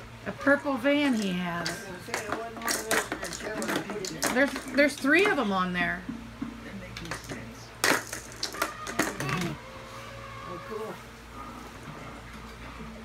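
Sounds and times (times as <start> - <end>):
toys knocking on plastic tray: 1.6 - 9.5.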